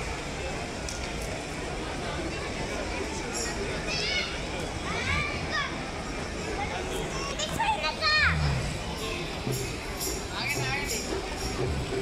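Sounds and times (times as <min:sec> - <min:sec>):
crowd noise hum: 0:00.0 - 0:12.0.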